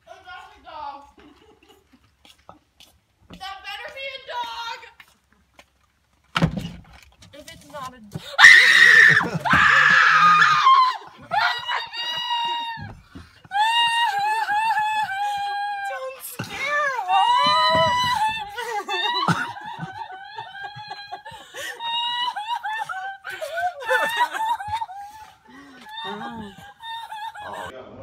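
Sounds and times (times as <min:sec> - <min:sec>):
people screaming: 0:08.4 - 0:27.8.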